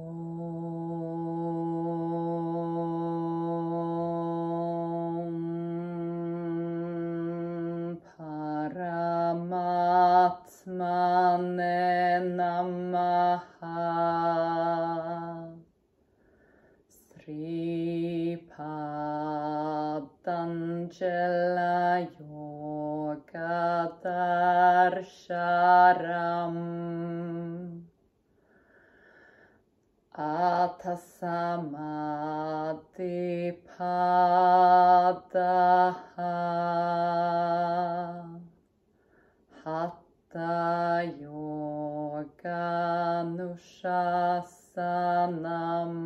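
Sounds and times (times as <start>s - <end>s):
woman chanting: 0.0s - 15.7s, 16.9s - 28.0s, 30.1s - 38.6s, 39.5s - 46.0s.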